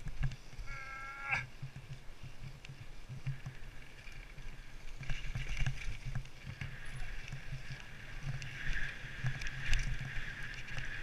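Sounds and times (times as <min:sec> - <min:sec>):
bike rattling over bumps: 0:00.0 - 0:11.0.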